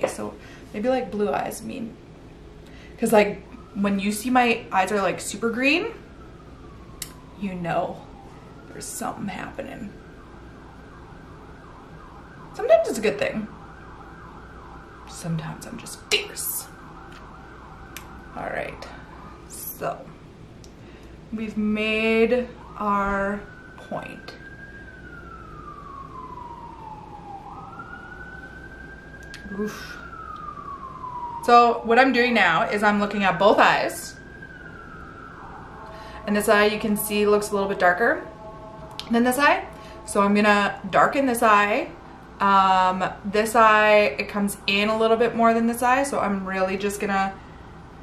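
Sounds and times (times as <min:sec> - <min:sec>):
faint emergency siren: 0:00.0 - 0:48.0.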